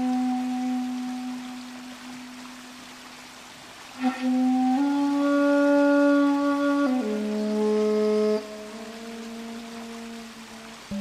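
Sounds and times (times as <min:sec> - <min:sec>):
bamboo flute playing: 0:00.0 - 0:02.9, 0:03.8 - 0:11.0.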